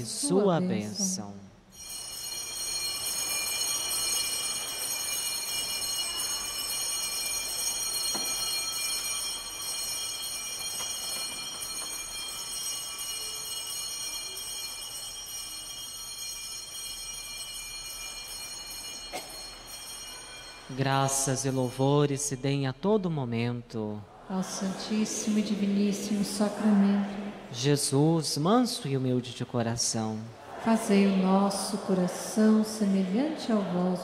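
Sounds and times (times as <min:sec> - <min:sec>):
small bells ringing: 0:00.0 - 0:23.4.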